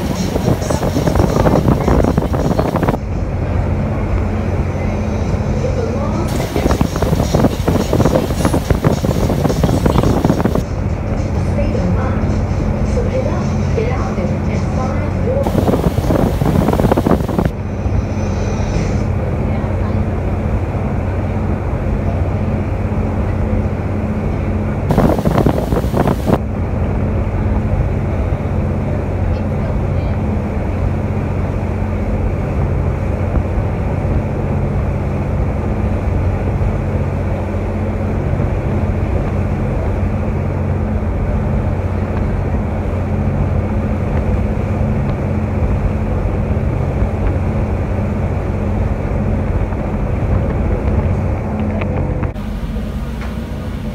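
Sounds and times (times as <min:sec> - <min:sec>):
wind buffeting microphone: 0:00.0 - 0:03.6, 0:05.7 - 0:10.7, 0:15.4 - 0:17.6, 0:24.9 - 0:26.8
ferry engine hum: 0:00.0 - 0:53.9
rushing wind and water: 0:00.0 - 0:53.9
burst of noise: 0:15.4 - 0:17.5, 0:24.9 - 0:26.4.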